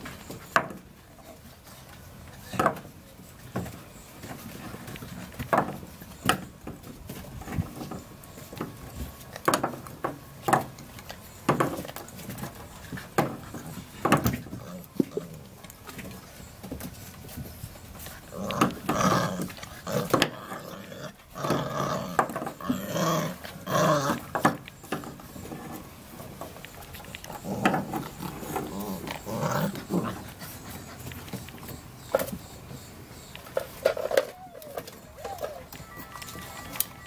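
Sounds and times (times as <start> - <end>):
puppies growling in play: 12.1 - 16.4, 17.1 - 24.6, 25.2 - 32.0.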